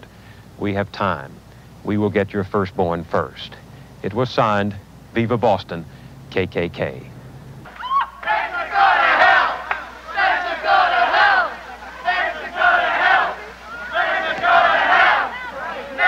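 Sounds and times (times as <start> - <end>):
crowd shouting together: 7.7 - 16.0.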